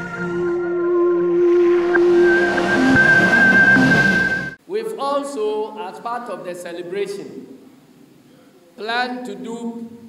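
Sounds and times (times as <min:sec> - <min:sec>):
high held electronic tone: 0:00.0 - 0:04.6
loud rushing noise: 0:01.0 - 0:04.6.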